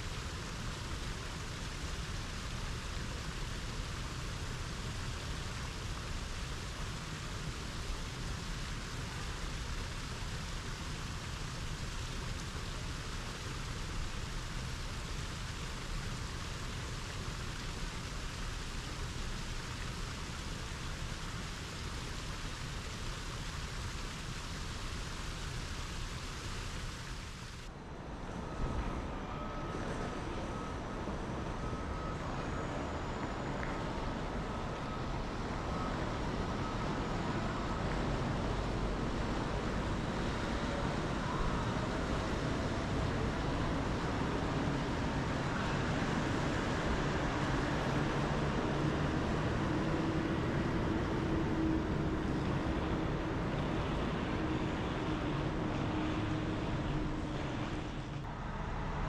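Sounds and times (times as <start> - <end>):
waterfall splashing into pool: 0.0 - 27.7.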